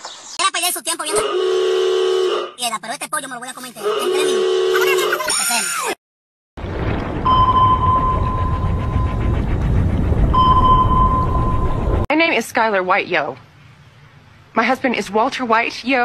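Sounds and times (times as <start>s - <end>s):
low rumbling noise: 6.6s - 12.1s
high electronic beep: 7.3s - 9.2s, 10.4s - 11.8s.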